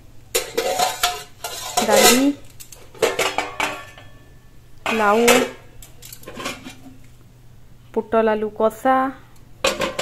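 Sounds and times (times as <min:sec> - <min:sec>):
steel dishware clinking: 0:03.0 - 0:04.3.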